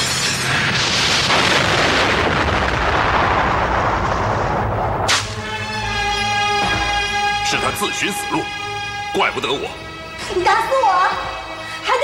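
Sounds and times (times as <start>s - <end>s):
explosion blast: 0.6s - 5.6s.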